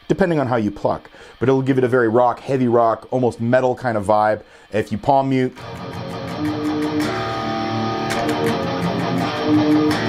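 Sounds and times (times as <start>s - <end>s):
palm-muted electric guitar riff: 5.5s - 10.0s.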